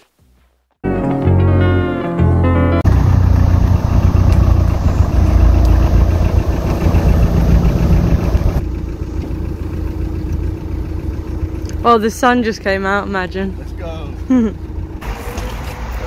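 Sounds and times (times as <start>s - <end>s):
car engine running: 2.8s - 16.0s.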